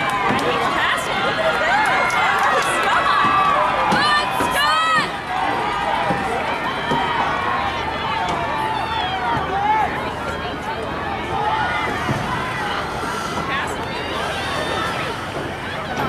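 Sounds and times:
loud high cheer: 0.0 - 16.0
spectators shouting: 0.0 - 16.0.

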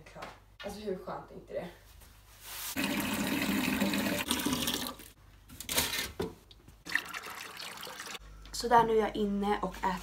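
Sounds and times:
tap water running into watering can: 2.8 - 5.1, 6.9 - 8.2.

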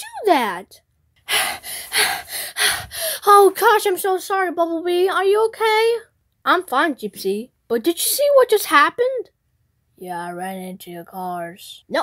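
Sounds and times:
person gasping and panting: 1.2 - 3.2.

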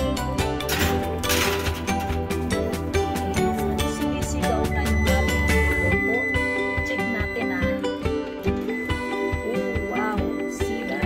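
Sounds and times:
instrumental music with steady beat: 0.0 - 11.0.

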